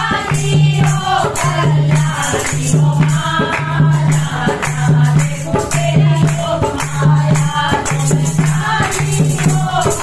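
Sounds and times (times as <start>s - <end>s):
hand clapping: 0.0s - 10.0s
hand drum beat: 0.0s - 10.0s
women singing devotional song: 0.0s - 10.0s.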